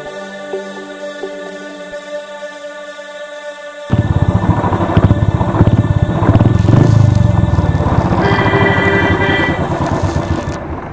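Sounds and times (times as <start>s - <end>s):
steady higher tone: 3.2s - 10.1s
motorcycle engine running: 3.9s - 10.9s.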